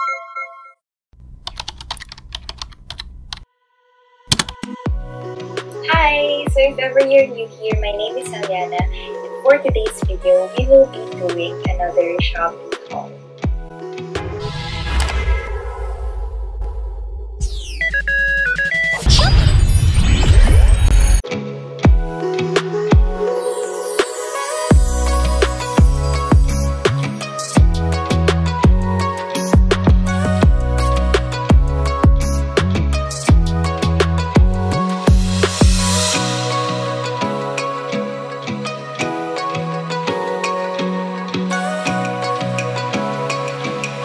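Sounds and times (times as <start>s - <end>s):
sweeping whooshes: 14.2s - 17.6s
crash of glitchy noise: 14.2s - 21.2s.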